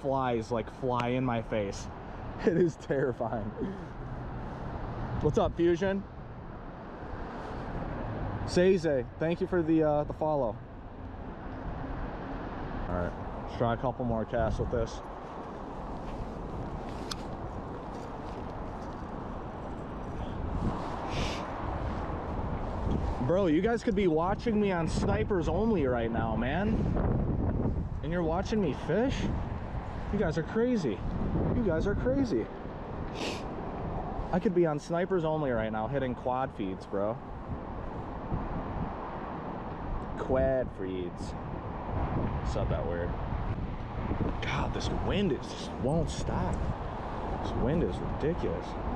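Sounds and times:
wind buffeting microphone: 0:13.2 - 0:34.4, 0:37.2 - 0:48.9
brief rustle: 0:16.0 - 0:19.1.

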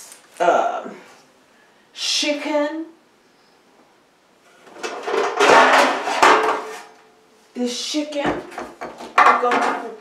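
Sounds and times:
pans clattering and scraping: 0:04.6 - 0:07.0.

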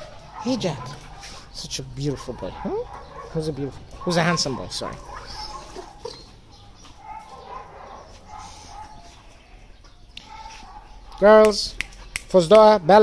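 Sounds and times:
soft dog vocal sounds: 0:00.0 - 0:12.2.

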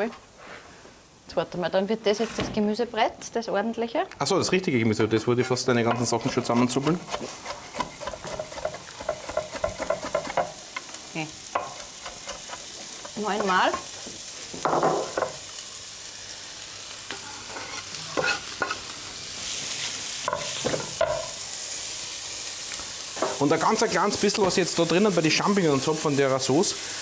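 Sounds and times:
vegetables sizzling in a pan: 0:00.0 - 0:27.0
knife chopping on cutting board: 0:05.9 - 0:10.4.

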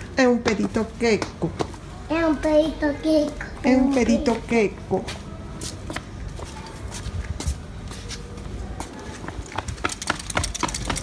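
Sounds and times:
footsteps on tiled paving: 0:00.2 - 0:02.4, 0:03.2 - 0:11.0.

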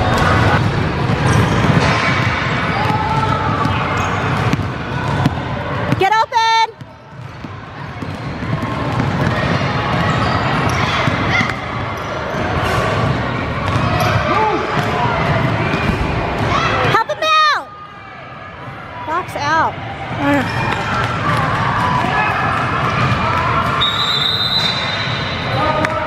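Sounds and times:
basketball bouncing on wooden floor: 0:01.2 - 0:06.0, 0:06.7 - 0:11.5.

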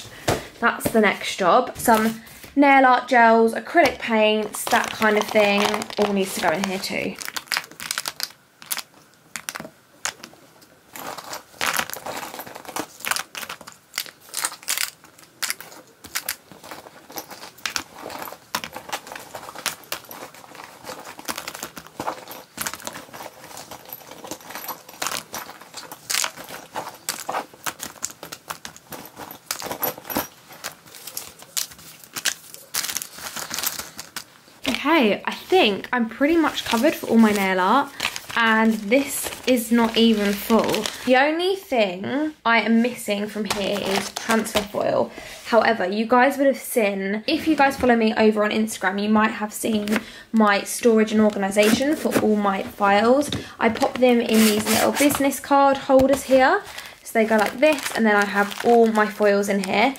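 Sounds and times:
plastic and paper crinkling: 0:03.7 - 0:41.3, 0:42.8 - 0:45.6, 0:48.7 - 0:59.9
small pots and bottles clicking: 0:04.3 - 0:34.3.

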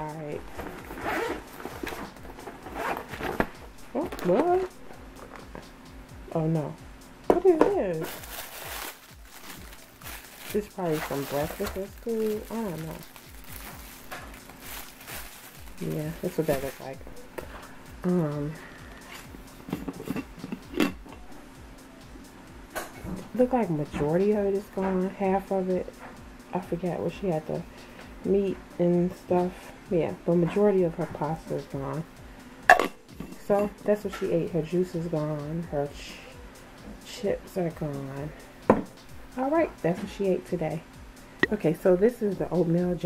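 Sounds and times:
zipper on fabric bag: 0:00.4 - 0:04.7.

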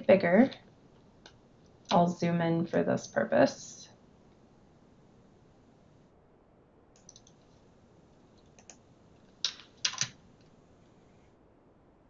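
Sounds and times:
keyboard keystrokes: 0:07.0 - 0:07.4, 0:09.4 - 0:10.2.

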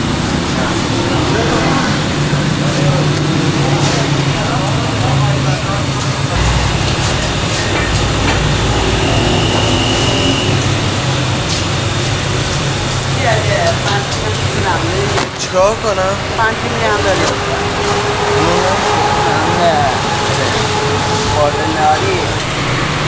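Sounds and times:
indistinct background voices: 0:00.0 - 0:23.0
low rumble: 0:00.6 - 0:12.5.

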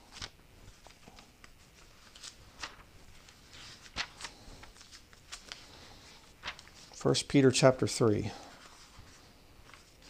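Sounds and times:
thin pages flicking and rustling: 0:00.0 - 0:07.0, 0:08.5 - 0:10.0.

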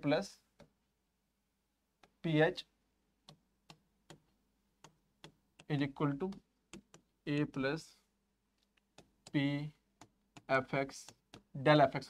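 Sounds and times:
stylus tapping a screen: 0:01.9 - 0:02.4, 0:03.2 - 0:07.9, 0:08.6 - 0:11.6.

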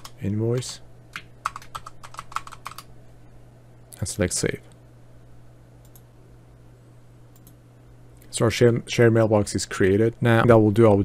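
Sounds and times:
computer keyboard typing: 0:00.0 - 0:02.9.

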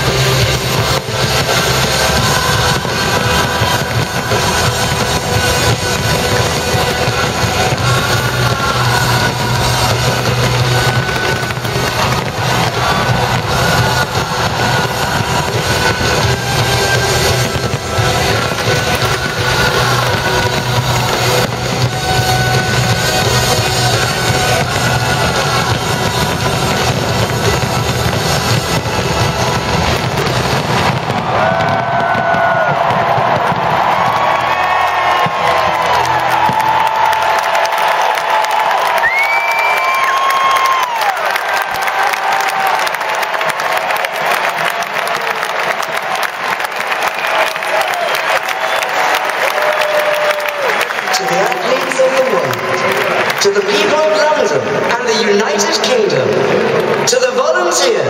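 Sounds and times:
crowd cheering: 0:00.0 - 0:58.0
fireworks crackling and banging: 0:00.0 - 0:58.0
loud music: 0:00.0 - 0:58.0.

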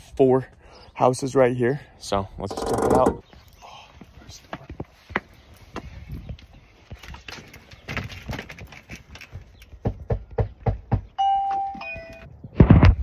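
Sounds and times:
doorbell ding-dong: 0:11.2 - 0:12.3.

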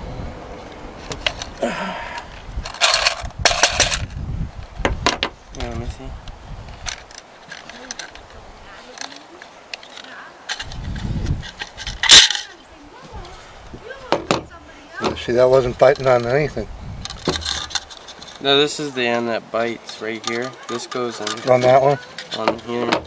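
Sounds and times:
metal clicks and scrapes: 0:02.2 - 0:04.1, 0:06.7 - 0:12.6, 0:15.0 - 0:16.4, 0:17.0 - 0:18.4, 0:19.8 - 0:23.0
metal rattle: 0:02.6 - 0:04.2, 0:06.8 - 0:12.6, 0:14.1 - 0:18.5, 0:19.8 - 0:23.0.

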